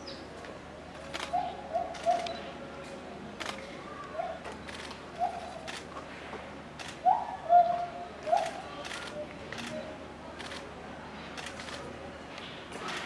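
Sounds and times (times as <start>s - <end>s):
camera shutter clicks: 1.0s - 2.4s, 3.4s - 3.6s, 4.6s - 5.0s
bird calling: 1.2s - 2.4s.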